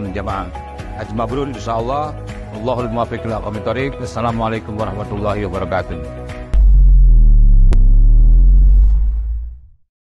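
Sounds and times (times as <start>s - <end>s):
deep bass drone: 6.5s - 9.9s.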